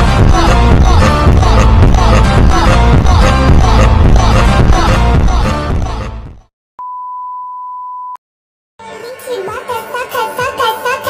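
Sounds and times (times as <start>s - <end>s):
music: 0.0s - 6.5s, 8.8s - 11.0s
steady test tone beep: 6.8s - 8.2s.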